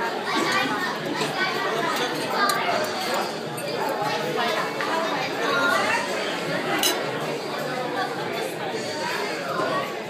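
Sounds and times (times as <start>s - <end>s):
crowd of voices chattering: 0.0s - 10.0s.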